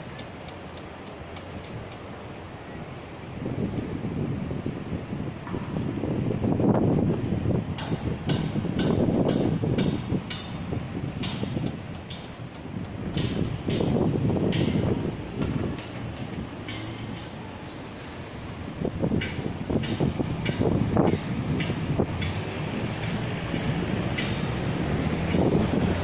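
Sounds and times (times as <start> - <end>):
wind buffeting microphone: 2.9 - 26.0.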